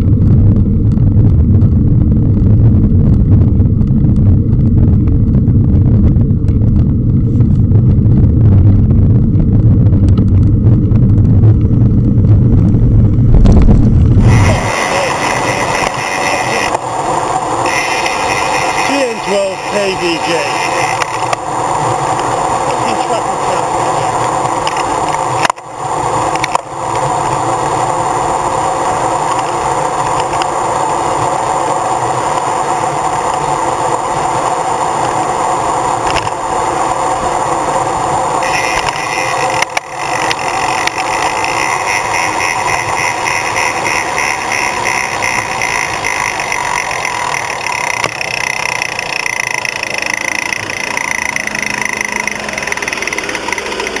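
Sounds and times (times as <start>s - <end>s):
high whine: 0.0s - 54.0s
road sweeper engine running: 14.1s - 54.0s.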